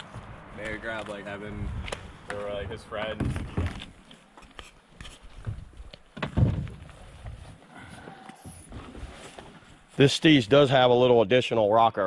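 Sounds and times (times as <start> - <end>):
heavy thud: 6.2 - 6.8.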